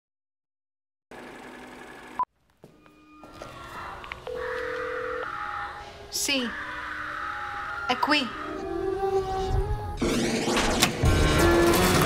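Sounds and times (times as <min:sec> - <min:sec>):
multi-tone electronic hum: 0:01.1 - 0:05.5
layered electronic drone: 0:06.6 - 0:12.0.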